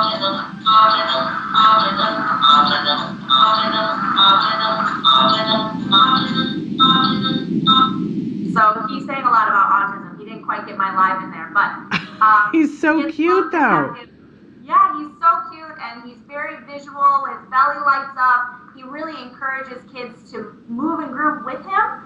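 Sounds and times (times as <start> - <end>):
electronic voice singing: 0.0 - 8.0, 12.9 - 14.0.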